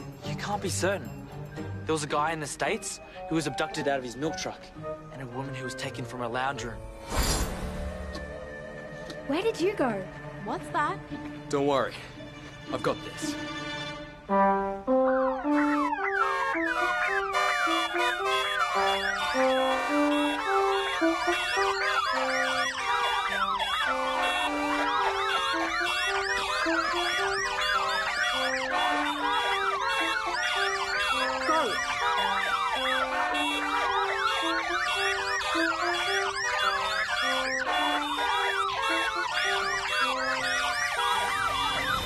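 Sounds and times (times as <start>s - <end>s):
cornet playing a melody: 14.3s - 41.4s
siren-like wailing swoops: 15.2s - 42.0s.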